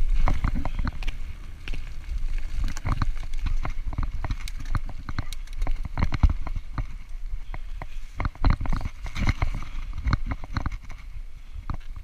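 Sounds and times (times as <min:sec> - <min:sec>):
bike frame and chain rattling: 0:00.0 - 0:11.2
low rumble of tyres on dirt: 0:00.0 - 0:12.0.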